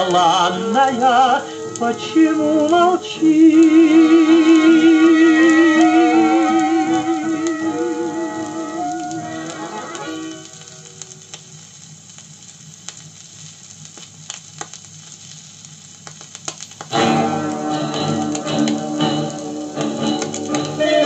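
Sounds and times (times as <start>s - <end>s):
song on a record: 0.0s - 11.6s, 16.8s - 21.0s
record surface hiss: 0.0s - 21.0s
vinyl crackles and clicks: 0.0s - 21.0s.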